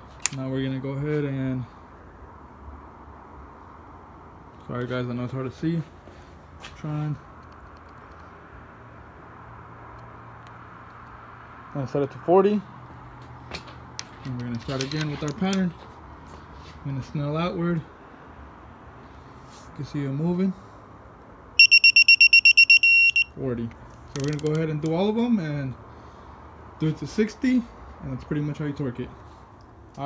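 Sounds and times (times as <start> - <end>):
torque wrench beeping: 21.6 - 23.3.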